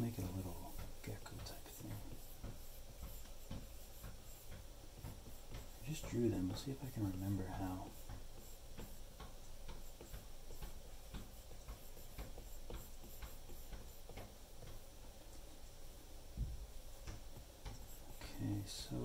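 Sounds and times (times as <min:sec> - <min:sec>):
stylus ticking on glass screen: 0:17.0 - 0:18.4.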